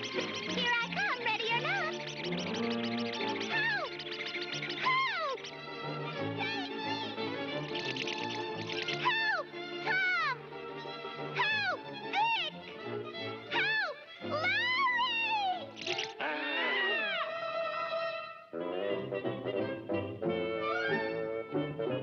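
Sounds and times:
orchestral cartoon music: 0.0s - 22.0s.

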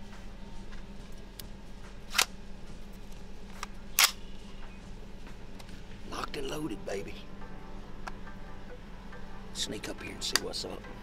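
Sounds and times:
rifle action clacks: 4.0s - 4.2s.

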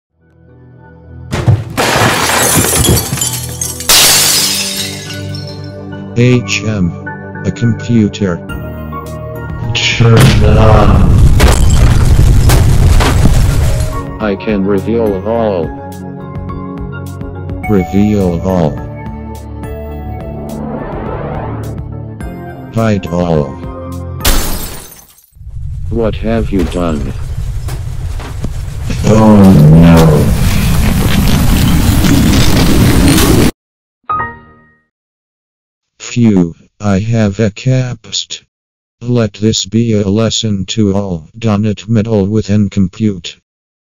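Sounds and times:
background music: 0.2s - 1.8s, 3.2s - 11.0s, 13.6s - 24.3s, 34.1s - 34.9s
crashing shattering sound effects: 1.4s - 5.6s, 11.2s - 14.0s
low rumble: 19.8s - 22.2s, 25.4s - 33.0s.

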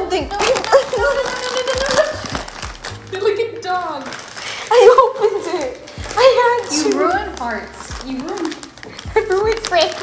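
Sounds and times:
music playing: 0.0s - 10.0s.

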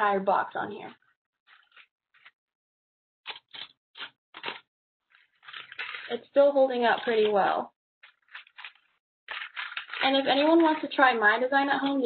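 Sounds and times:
paper clips shaken onto paper: 3.3s - 4.6s, 5.2s - 6.2s, 8.0s - 10.8s.

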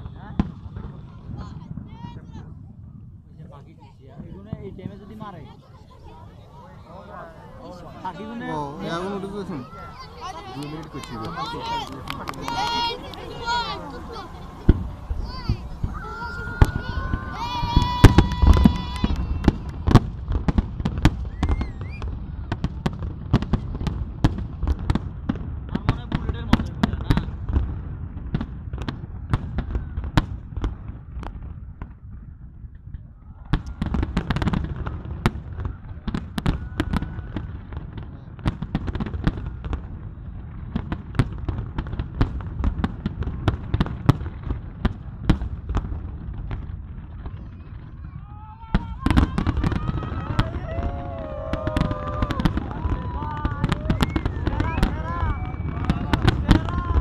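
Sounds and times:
fireworks bangs and crackles: 0.0s - 57.0s.

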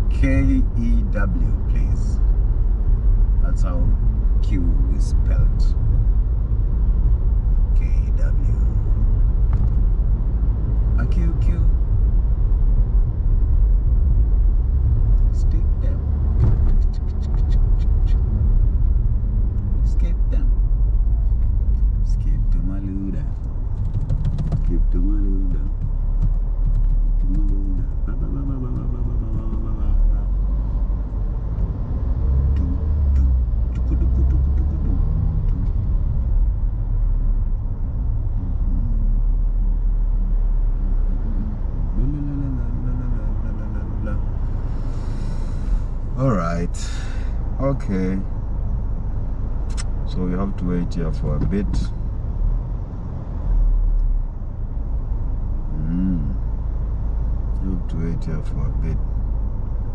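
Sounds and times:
car interior road and engine noise: 0.0s - 59.9s
man murmuring: 27.2s - 30.3s, 33.8s - 35.2s, 38.4s - 39.2s, 41.2s - 44.3s, 55.7s - 56.4s.

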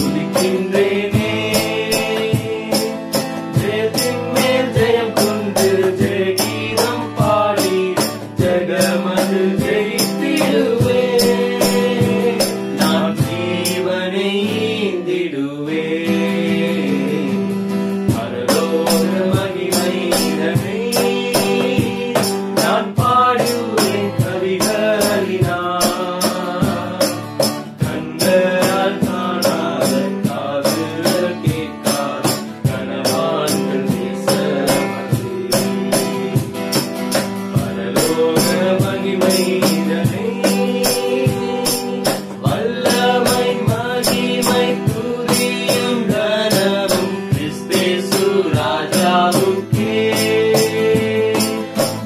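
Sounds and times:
cajon and hand percussion: 0.0s - 14.9s, 16.0s - 52.0s
men singing: 0.0s - 52.0s
strummed acoustic guitar: 0.0s - 52.0s.

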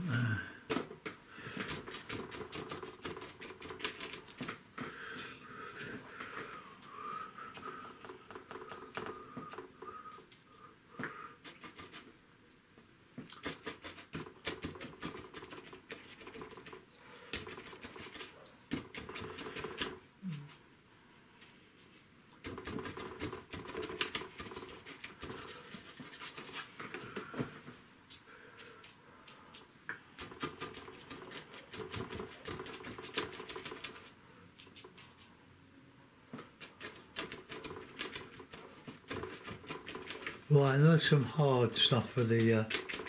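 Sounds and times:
brush dabbing paint on paper: 1.4s - 4.6s, 11.0s - 12.2s, 13.2s - 20.6s, 21.4s - 27.1s, 28.4s - 35.4s, 36.4s - 43.0s.

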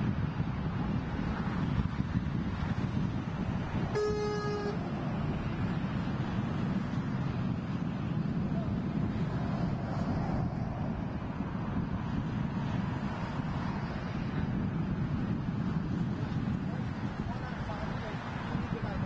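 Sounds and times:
wind rumble on microphone: 0.0s - 19.0s
vehicle horn toot: 3.9s - 4.8s.

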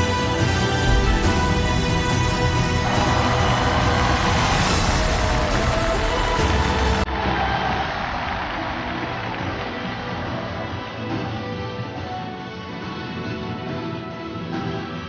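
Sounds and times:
loud instrumental music: 0.0s - 15.0s.

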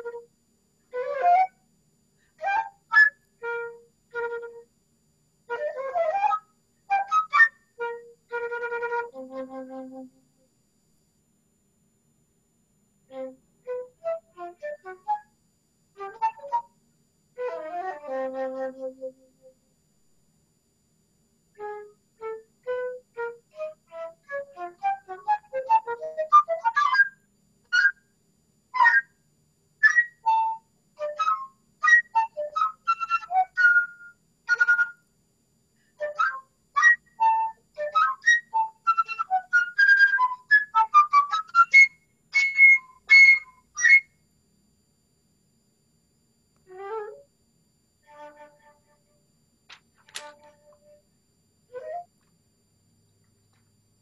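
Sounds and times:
flute playing fast notes: 0.9s - 1.5s, 2.4s - 4.6s, 5.5s - 10.1s, 13.1s - 15.2s, 16.0s - 16.6s, 17.4s - 19.2s, 21.6s - 27.1s, 27.7s - 28.0s, 28.8s - 29.0s, 29.8s - 34.9s, 36.0s - 44.0s, 46.7s - 47.2s, 48.1s - 49.1s, 51.7s - 52.1s.

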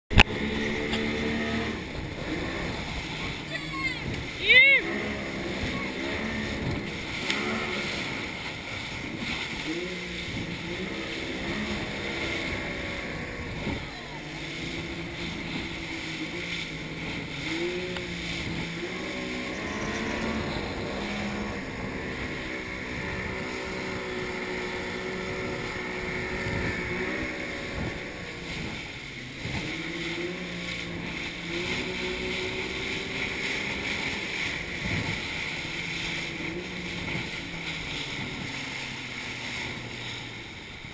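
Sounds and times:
wind: 0.0s - 40.9s
outboard engine running hard: 0.1s - 40.9s
rushing water and spray: 0.1s - 40.9s.

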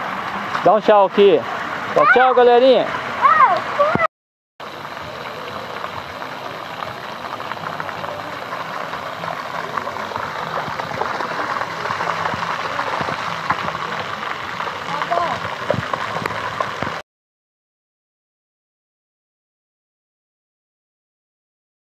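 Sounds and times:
water rushing over paving: 0.0s - 17.0s
bare feet splashing: 4.7s - 17.0s.

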